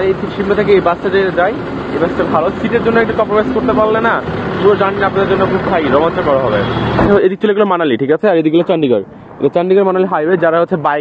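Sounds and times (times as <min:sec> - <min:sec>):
vehicle engine idling: 0:00.0 - 0:07.2
man talking: 0:00.0 - 0:11.0.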